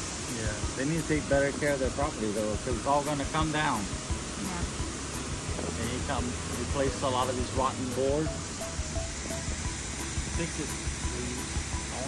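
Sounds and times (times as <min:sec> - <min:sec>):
creek water rushing: 0:00.0 - 0:12.0.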